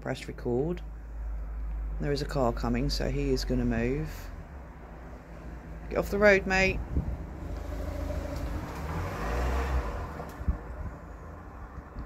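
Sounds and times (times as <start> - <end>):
car driving past: 6.8 - 12.0.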